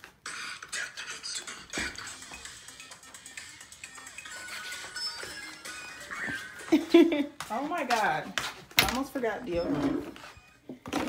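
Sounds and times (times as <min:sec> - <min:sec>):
music playing: 0:00.2 - 0:07.6.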